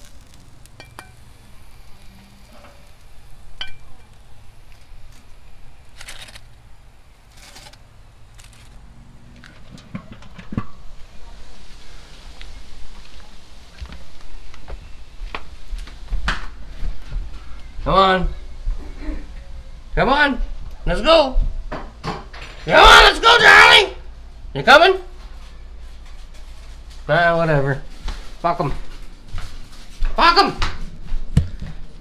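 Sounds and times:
faint sizzling: 0.0s - 19.7s.

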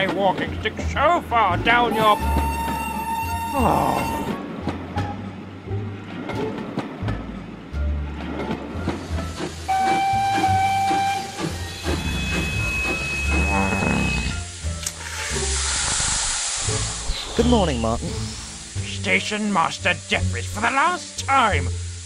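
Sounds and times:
background music: 0.0s - 22.0s
steam whistle: 1.9s - 4.4s, 9.6s - 14.5s
steam hissing: 9.0s - 22.0s.

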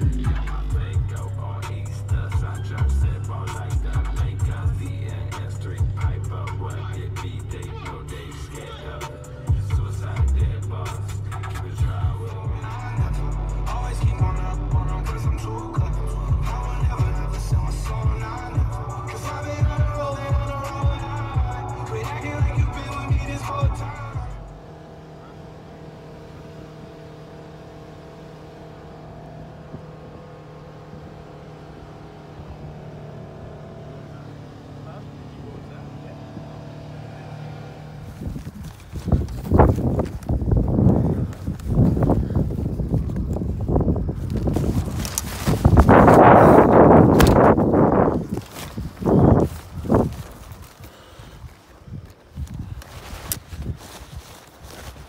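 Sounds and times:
music: 0.0s - 24.6s
vehicle engine and road noise: 0.0s - 55.0s.

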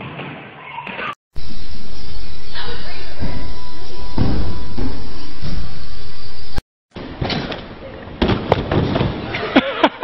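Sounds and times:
noisy background: 1.3s - 8.4s.

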